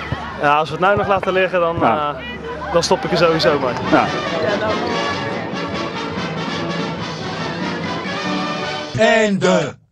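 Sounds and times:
background music: 3.0s - 9.8s.

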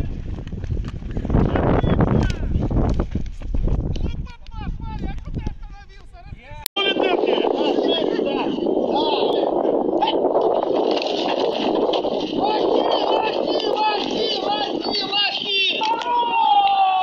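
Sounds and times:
microphone rumble: 0.0s - 16.2s
people shouting: 6.8s - 10.4s, 12.4s - 17.0s.

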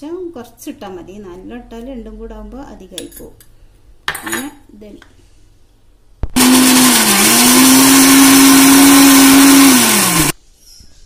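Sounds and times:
mixer grinder motor running: 6.4s - 10.4s.

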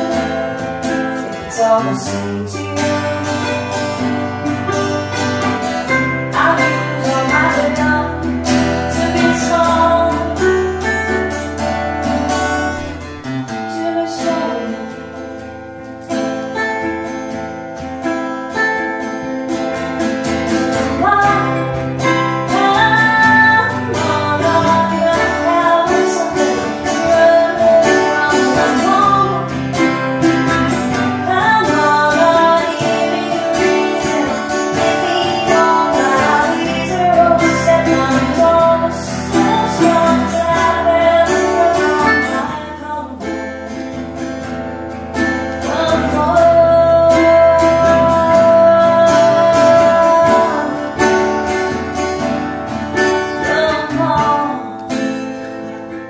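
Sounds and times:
acoustic guitar: 0.0s - 56.0s
ukulele: 0.0s - 56.0s.

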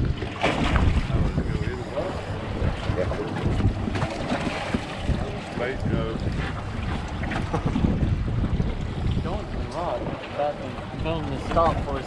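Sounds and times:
low rumble: 0.0s - 12.0s
wind buffeting microphone: 0.0s - 12.0s.

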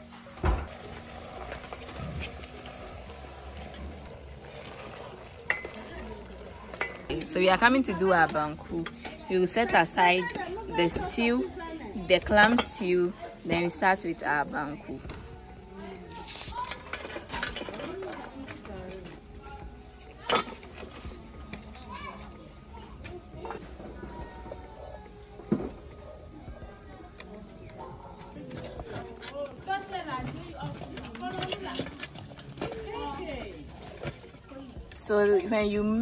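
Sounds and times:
children's voices at play: 19.4s - 33.7s.

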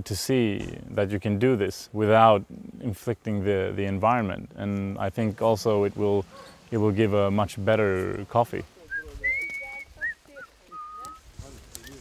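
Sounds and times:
person whistling: 8.9s - 11.2s.

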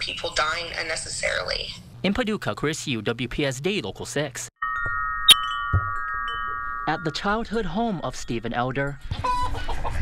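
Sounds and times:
metal wind chimes ringing: 4.6s - 9.1s.

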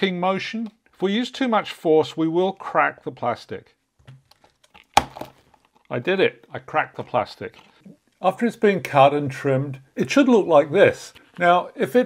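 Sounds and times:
plastic cover cracking: 4.2s - 5.9s.

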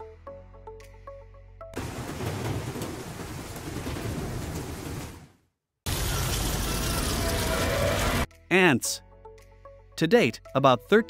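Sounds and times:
rain hissing: 1.8s - 5.3s, 5.9s - 8.3s
thunder rumble: 1.8s - 8.3s.

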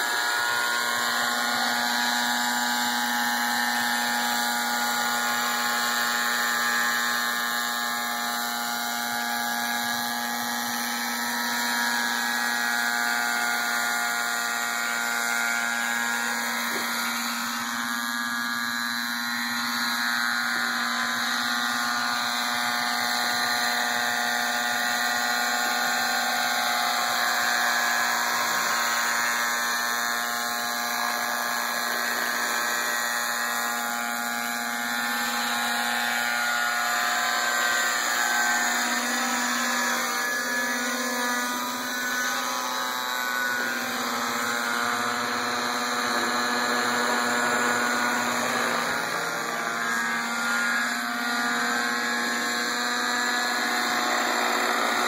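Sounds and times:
rc helicopter engine and rotors: 0.0s - 55.0s.

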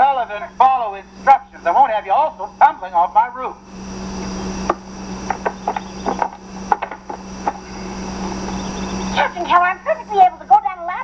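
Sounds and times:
low hum and hiss: 0.0s - 11.0s
knocks on wooden ladder: 5.3s - 7.6s.

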